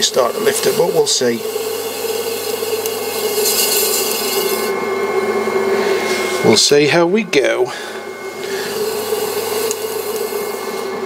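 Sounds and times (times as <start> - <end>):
potter's wheel motor hum: 0.0 - 11.0.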